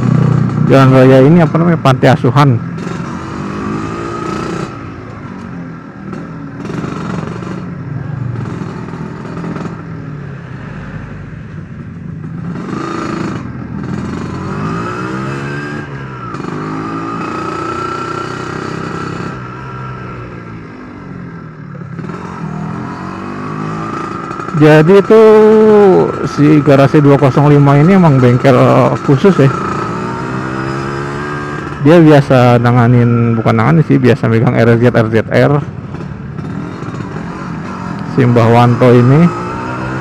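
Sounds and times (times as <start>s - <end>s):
motorcycle engine revving: 0.0s - 40.0s.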